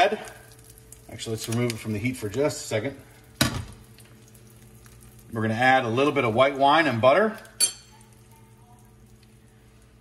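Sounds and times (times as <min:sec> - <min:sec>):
oil sizzling in frying pan: 0:00.0 - 0:07.6
low steady hum: 0:00.0 - 0:10.0.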